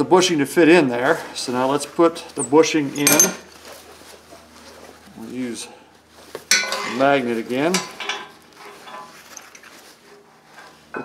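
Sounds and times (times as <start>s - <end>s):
faint handling noise: 0.8s - 11.0s
metal bushing clinking: 2.4s - 3.5s, 6.5s - 9.8s.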